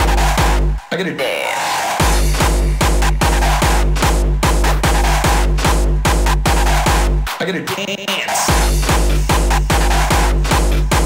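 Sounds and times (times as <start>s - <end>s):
bass and synth line: 0.0s - 0.8s, 2.0s - 7.3s, 8.5s - 11.0s
distorted kick drums: 0.0s - 0.8s, 2.0s - 11.0s.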